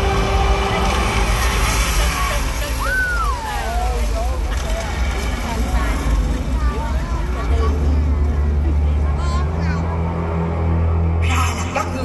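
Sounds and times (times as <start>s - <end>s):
fountain jets hissing: 0.0s - 8.3s
deep low rumble: 0.0s - 11.6s
spectators chattering and calling: 0.0s - 12.0s.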